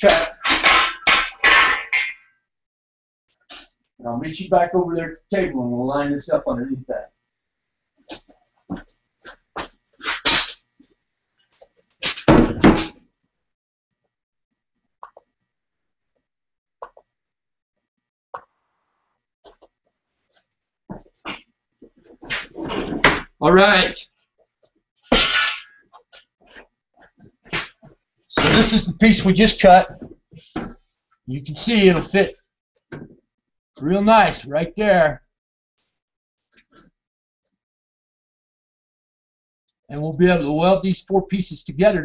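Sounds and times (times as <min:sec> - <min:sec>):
steel bar knocks and scuffs: 0:00.1 - 0:02.2, 0:25.1 - 0:26.6.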